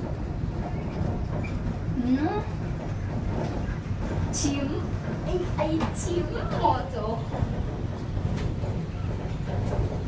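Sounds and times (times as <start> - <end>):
low rumble inside cable car: 0.0 - 10.0.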